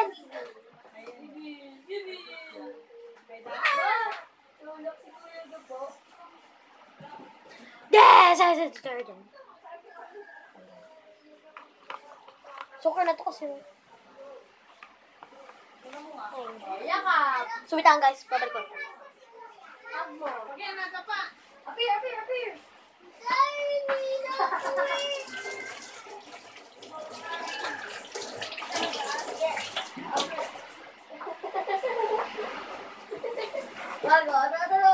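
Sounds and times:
girl talking: 0.0s - 0.5s, 7.9s - 9.2s, 16.7s - 20.7s, 23.2s - 25.7s.

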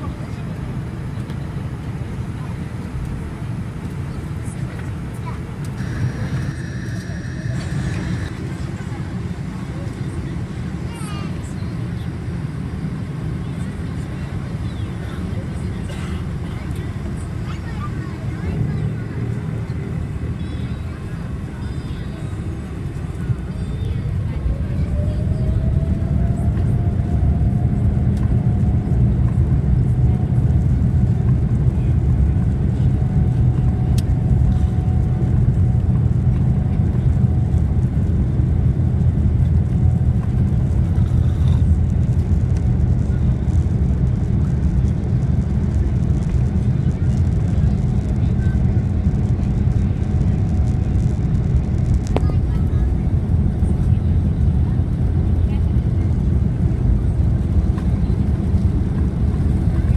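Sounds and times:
jet engines roaring: 0.0s - 59.9s.

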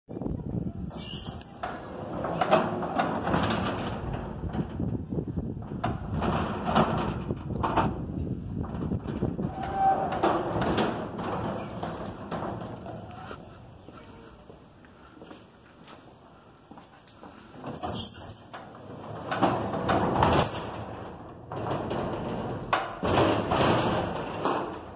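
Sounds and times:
metal gate clanking and rattling: 1.0s - 13.4s, 17.8s - 24.9s.

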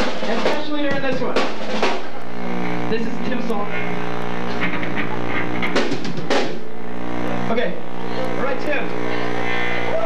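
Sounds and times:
drum kit hits: 0.0s - 2.8s, 4.5s - 6.7s
steady low hum: 0.0s - 10.0s.

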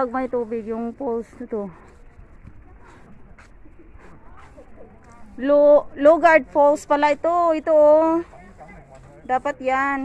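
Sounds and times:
quiet outdoor background noise: 0.0s - 10.0s.

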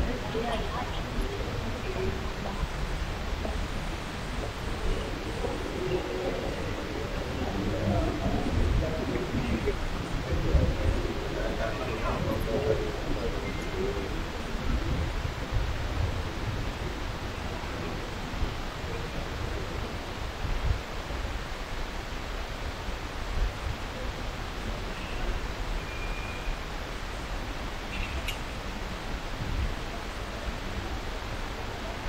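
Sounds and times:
hiss and hum of terminal hall: 0.0s - 32.0s
faint short beeps: 25.0s - 26.6s.

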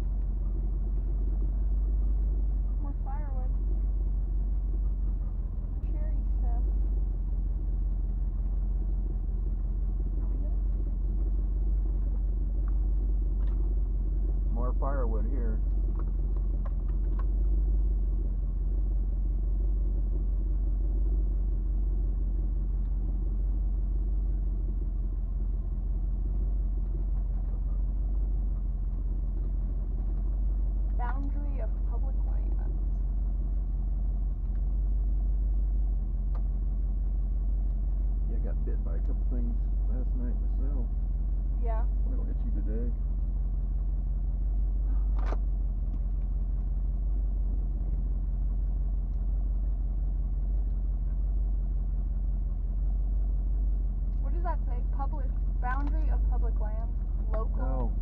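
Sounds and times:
car engine low rumble: 0.0s - 58.0s
indistinct voices: 54.3s - 58.0s.

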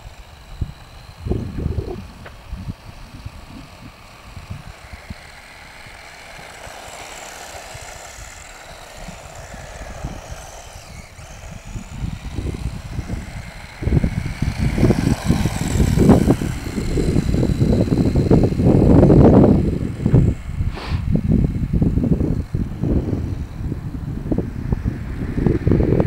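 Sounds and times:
rc truck motor whine: 0.0s - 26.0s.

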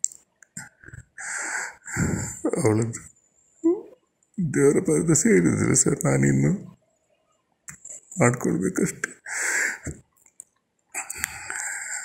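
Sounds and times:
man breathing heavily: 1.1s - 2.5s, 9.2s - 10.0s, 11.0s - 12.0s.

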